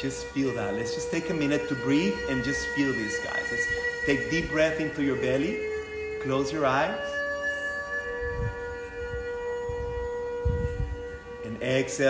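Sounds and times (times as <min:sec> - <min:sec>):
sustained ringing drone tone: 0:00.0 - 0:12.0.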